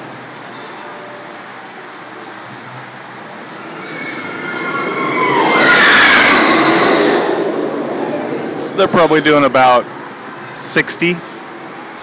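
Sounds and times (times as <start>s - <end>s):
high squealing of wheels: 3.2s - 8.4s
roller coaster rushing rumble: 3.2s - 10.2s.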